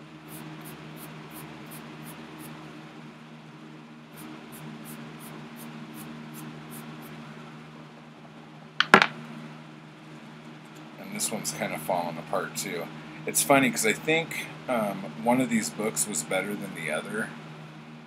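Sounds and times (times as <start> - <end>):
steady low hum: 0.0 - 18.0
sharp knock: 8.8 - 9.2.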